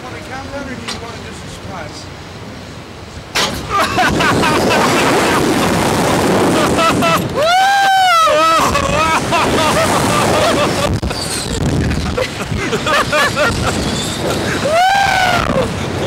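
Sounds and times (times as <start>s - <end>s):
wind rushing over microphone: 2.4s - 16.0s
riders screaming and shouting: 3.6s - 16.0s.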